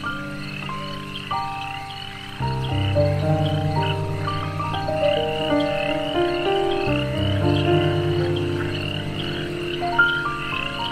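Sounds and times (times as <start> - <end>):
ambient meditation music: 0.0 - 10.9
frogs croaking and chirping: 0.0 - 10.9.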